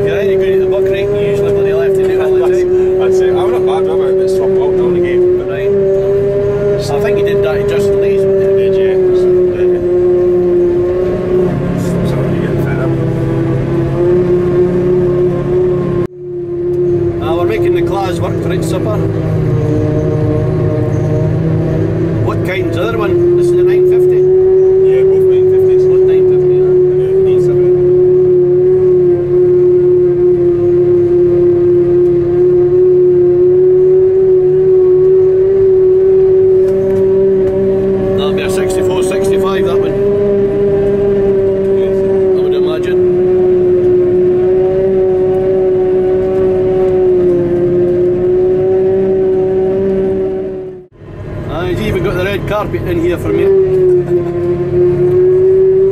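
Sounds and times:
harvester machine hum with whine: 0.0s - 55.9s.

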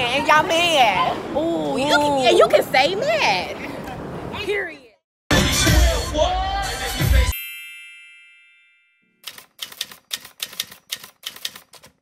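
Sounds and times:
bright ringing chime: 7.3s - 9.2s
typewriter keystroke clicks: 9.2s - 12.0s.

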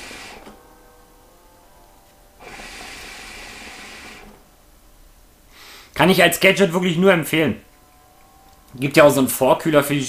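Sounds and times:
hookah draw rushing hiss: 0.0s - 0.7s, 2.4s - 4.8s.

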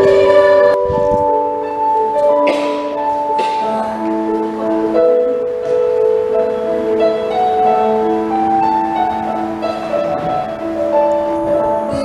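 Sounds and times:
electronic keyboard bell-like chords: 0.0s - 12.0s.

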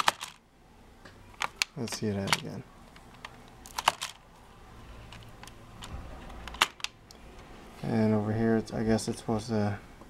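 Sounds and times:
plastic toy parts clicking: 0.0s - 0.4s, 1.4s - 4.2s, 5.1s - 7.0s.

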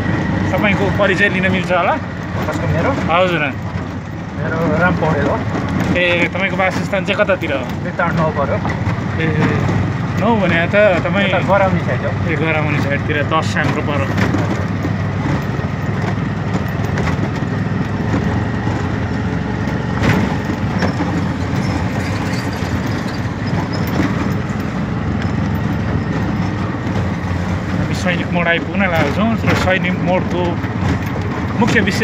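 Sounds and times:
auto-rickshaw engine drone: 0.0s - 32.0s.

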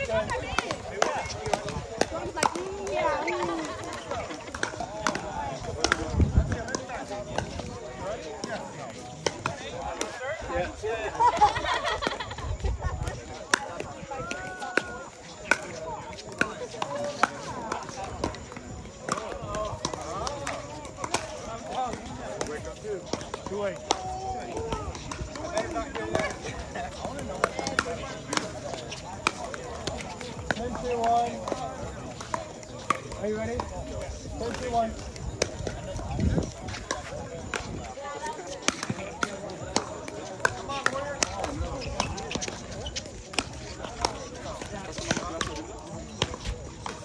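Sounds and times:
background chatter: 0.0s - 47.0s.

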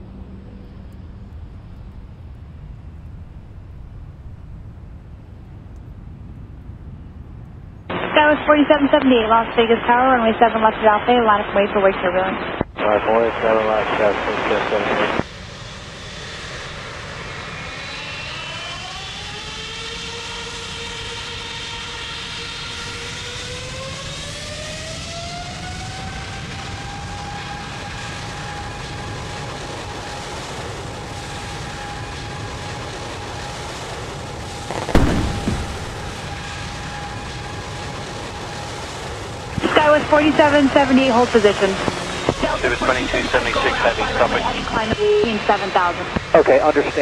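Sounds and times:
jet engines spooling up: 7.9s - 47.0s
rushing noise: 34.4s - 40.0s, 41.1s - 47.0s
sudden loud engine bang: 34.7s - 36.8s.

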